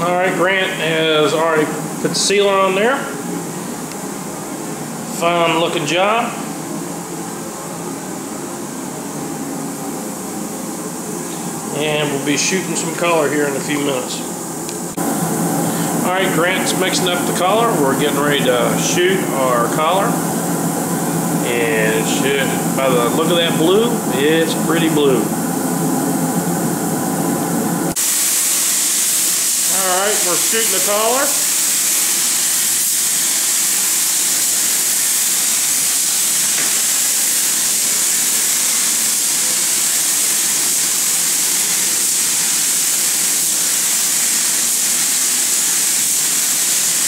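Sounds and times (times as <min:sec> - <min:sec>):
mechanical hum with held tones: 0:00.0 - 0:47.0
ventilation fan rushing: 0:00.0 - 0:47.0
spray gun compressed air hiss: 0:06.3 - 0:47.0.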